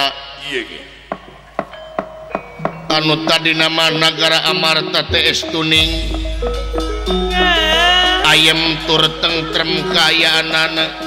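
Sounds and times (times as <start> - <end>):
gamelan notes: 1.4 - 11.0.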